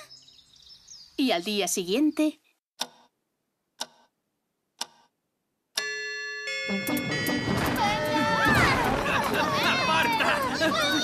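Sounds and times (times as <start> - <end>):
clock ticking: 2.8 - 3.1, 3.8 - 4.2, 4.8 - 6.0
bell-like chime: 5.8 - 8.8.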